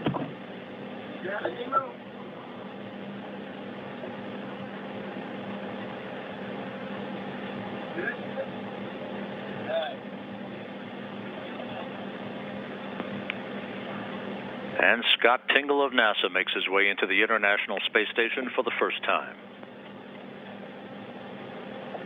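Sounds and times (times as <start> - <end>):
air-handling equipment hum and hiss: 0.0 - 22.0.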